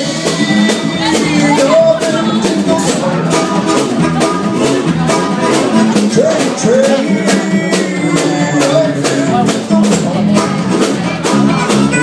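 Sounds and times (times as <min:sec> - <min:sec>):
drum kit beat: 0:00.0 - 0:12.0
electric guitar: 0:00.0 - 0:12.0
pitch-bending lead melody: 0:00.0 - 0:12.0.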